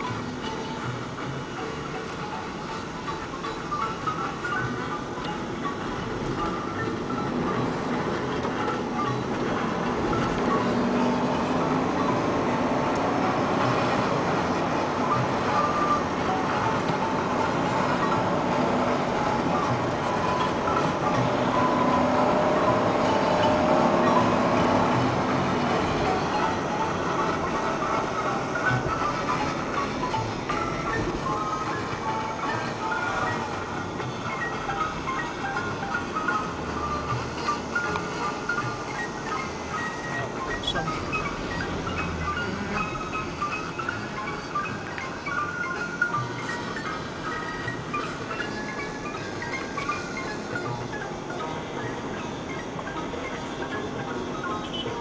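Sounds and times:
car road and engine noise: 0:00.0 - 0:55.0
music playing in car: 0:00.0 - 0:55.0.

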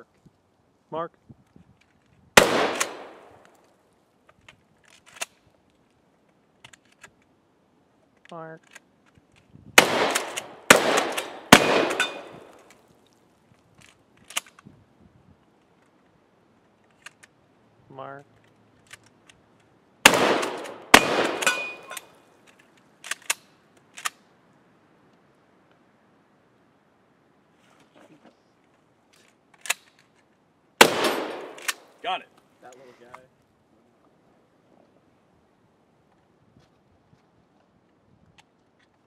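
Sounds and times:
faint rustling and ticks: 0:01.3 - 0:02.3, 0:03.4 - 0:09.6
shotgun shots: 0:02.4 - 0:03.4, 0:09.8 - 0:12.6, 0:20.0 - 0:22.1, 0:30.8 - 0:31.9
shell loading click: 0:02.4 - 0:03.6, 0:10.0 - 0:12.8, 0:20.1 - 0:24.2, 0:30.8 - 0:31.9.

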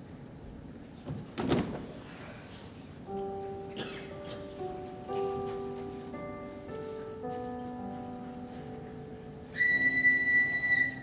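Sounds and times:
soft keyboard notes: 0:02.9 - 0:11.0
steady high whistle: 0:09.5 - 0:11.0.

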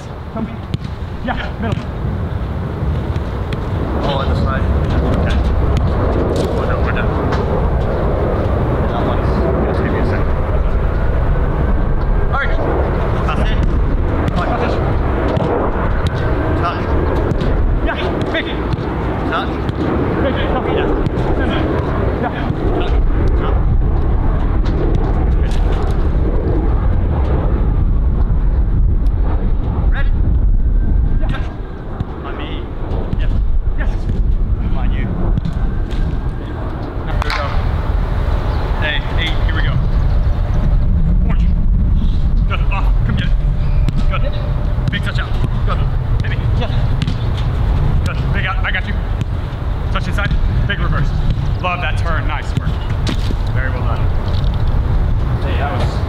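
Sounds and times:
wind rumbling on microphone: 0:00.0 - 0:56.0.

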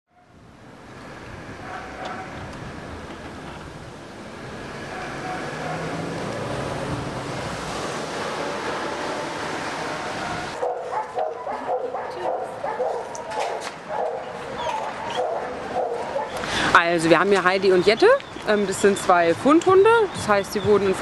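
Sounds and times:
steady rushing noise: 0:00.3 - 0:17.9
dogs barking: 0:01.6 - 0:02.4, 0:04.8 - 0:06.2, 0:10.1 - 0:16.5.

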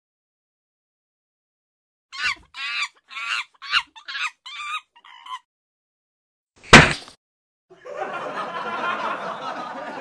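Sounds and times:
hen clucking and squawking: 0:02.2 - 0:05.4.

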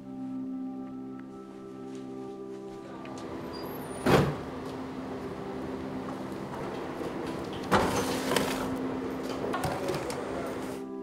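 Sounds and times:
steady low hum: 0:02.7 - 0:09.6.

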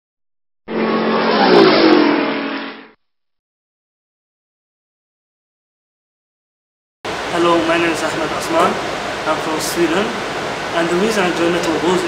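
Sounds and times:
rushing sound with falling pitch: 0:00.7 - 0:03.0.

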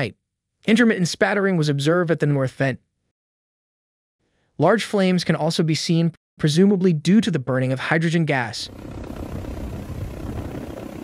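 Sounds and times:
helicopter engine and rotor rumble: 0:08.6 - 0:11.0.

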